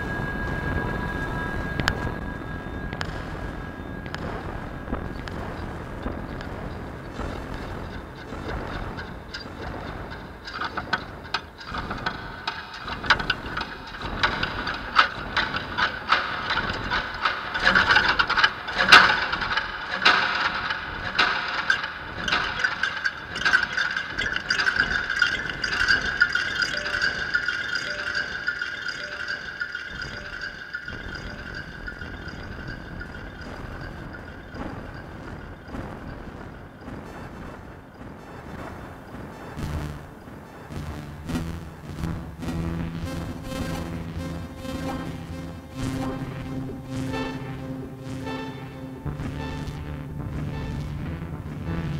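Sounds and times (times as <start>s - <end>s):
high sustained electronic tone: 0.0s - 37.5s, 38.2s - 51.9s
lower electronic layer: 0.0s - 51.9s
taps and rattles on glass and strings: 4.0s - 37.8s.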